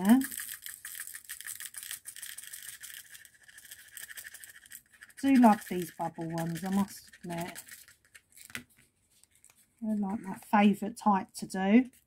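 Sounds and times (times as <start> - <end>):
small beads clicking into plastic container: 0.0 - 8.6.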